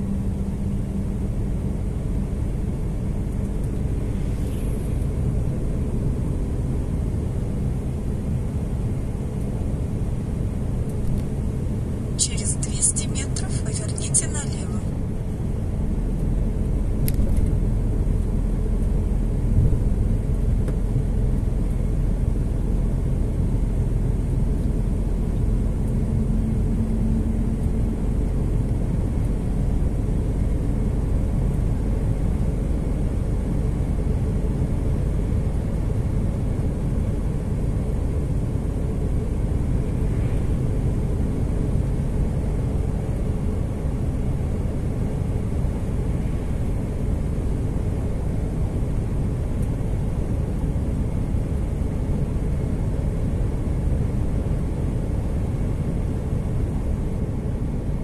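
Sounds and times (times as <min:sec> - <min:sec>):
truck engine and road rumble: 0:00.0 - 0:58.0.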